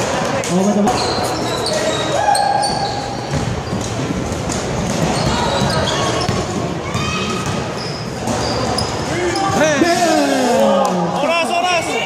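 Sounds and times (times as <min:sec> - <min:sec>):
sneakers squeaking: 0:00.5 - 0:09.6
basketball dribbling: 0:03.2 - 0:07.7.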